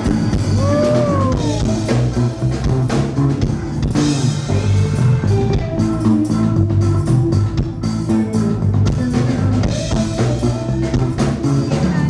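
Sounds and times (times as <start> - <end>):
ska band playing: 0.0 - 12.0.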